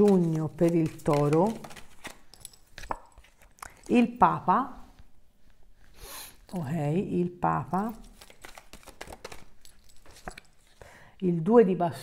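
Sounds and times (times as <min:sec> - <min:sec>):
cards clicking and tapping: 0:00.0 - 0:04.1, 0:08.1 - 0:10.7.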